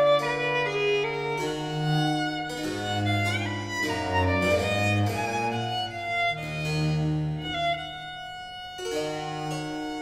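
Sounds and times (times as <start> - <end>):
harpsichord: 0.0 - 10.0
solo violin playing: 0.0 - 10.0.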